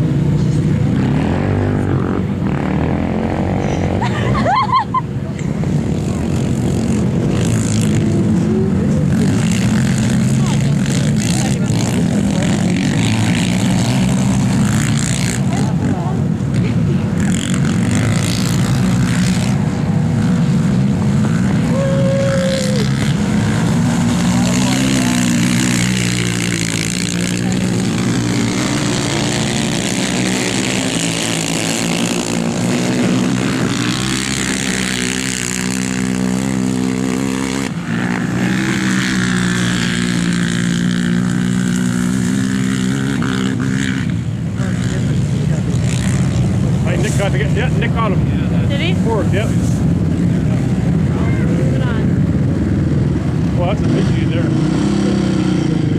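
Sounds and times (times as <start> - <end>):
quad engines racing: 0.0 - 55.9.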